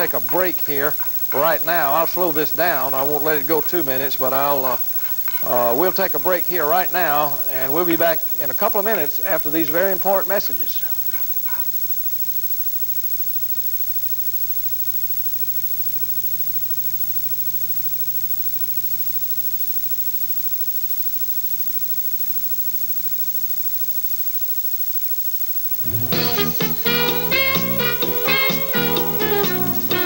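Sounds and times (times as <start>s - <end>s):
faint hiss: 0.0s - 13.2s, 19.6s - 30.0s
low electrical hum: 0.0s - 30.0s.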